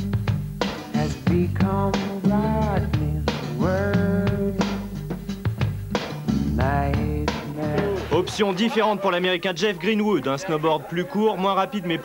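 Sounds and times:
bass: 0.0 - 8.4
drumbeat: 0.0 - 12.0.

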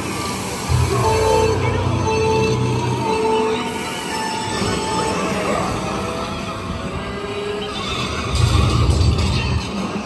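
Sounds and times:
deep rumble: 0.7 - 3.4
game sound effects: 0.7 - 5.5
game music: 0.7 - 6.2.

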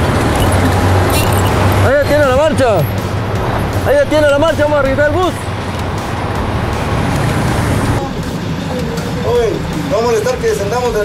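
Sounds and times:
heavy vehicle engines: 0.0 - 11.0.

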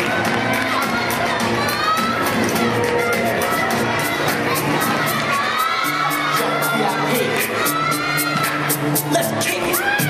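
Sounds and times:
crowd cheering and shouting: 0.0 - 10.0
music with steady beat: 0.0 - 10.0.

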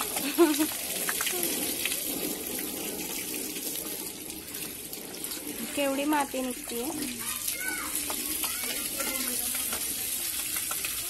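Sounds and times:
water from garden hose splashing: 0.0 - 11.0.

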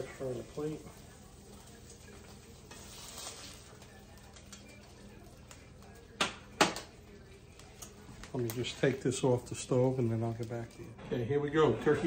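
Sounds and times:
onions sizzling in frying pan: 0.0 - 7.0, 7.8 - 10.9.

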